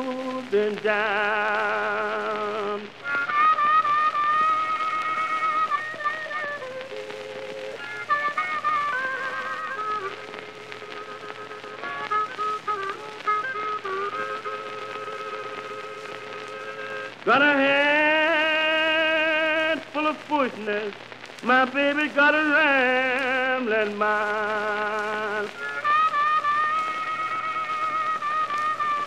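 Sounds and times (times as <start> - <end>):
record hiss and crackle: 0.0 - 29.0
blues harmonica playing: 1.7 - 18.2, 24.2 - 29.0.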